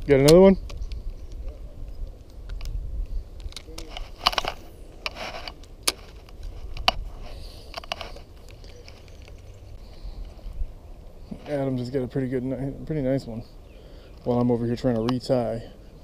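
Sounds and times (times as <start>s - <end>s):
wind on microphone: 0.0s - 5.5s.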